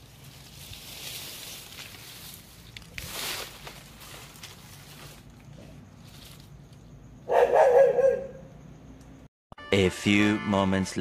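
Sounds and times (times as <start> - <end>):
dog barking: 7.3 - 8.5.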